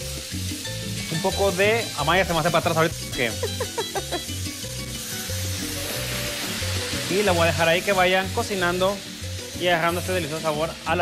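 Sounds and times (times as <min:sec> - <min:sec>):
background music with bass line: 0:00.0 - 0:11.0
patties sizzling in a frying pan: 0:00.0 - 0:11.0.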